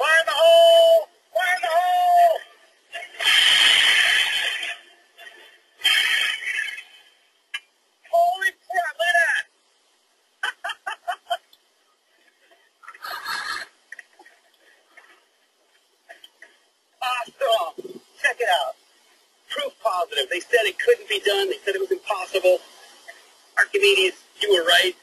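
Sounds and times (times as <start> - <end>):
men calling out: 0.0 - 3.1
rush of released steam: 3.2 - 4.6.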